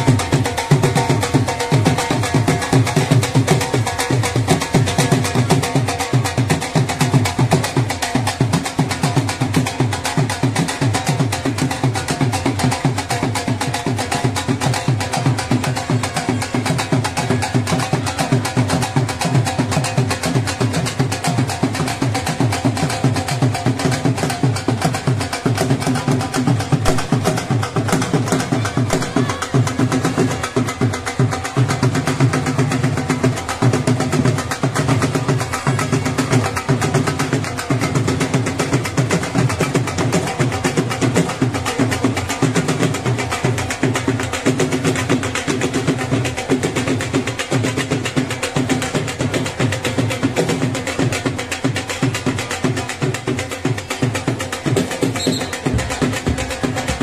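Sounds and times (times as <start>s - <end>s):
barrel drums fast rhythm: 0.0s - 57.0s
held pitched tone: 55.2s - 55.7s.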